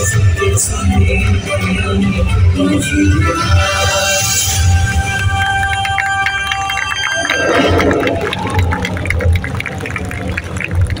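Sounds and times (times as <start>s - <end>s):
soundtrack over loudspeakers: 0.0s - 11.0s
rush of noise: 7.0s - 11.0s.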